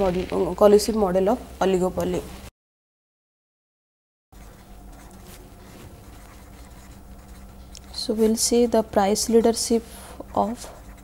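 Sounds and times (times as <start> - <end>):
low electrical hum: 0.0 - 2.5, 4.4 - 11.0
marker scratching on paper: 4.4 - 11.0.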